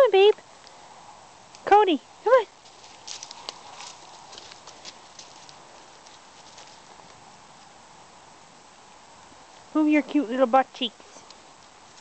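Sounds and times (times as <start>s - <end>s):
footsteps crunching on dry leaves: 2.6s - 7.1s.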